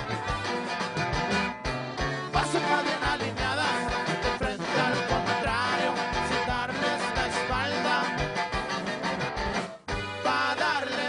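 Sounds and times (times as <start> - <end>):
drum-kit beat: 0.0 - 10.3
live band playing: 0.0 - 11.0.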